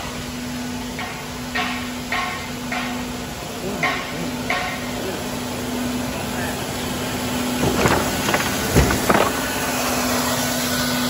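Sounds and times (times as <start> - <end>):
floor scrubber humming: 7.2 - 11.0
brooms knocking debris: 7.6 - 9.8.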